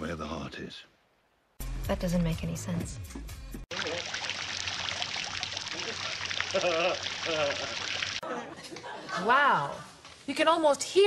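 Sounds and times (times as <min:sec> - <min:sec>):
fountain water splashing: 0:03.7 - 0:08.2
man laughing: 0:05.7 - 0:09.0.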